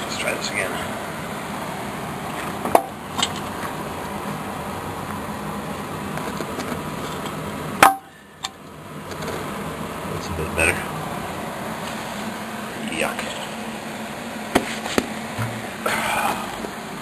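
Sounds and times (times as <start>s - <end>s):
steady running noise: 0.0s - 17.0s
sharp loud knock: 15.4s - 15.6s.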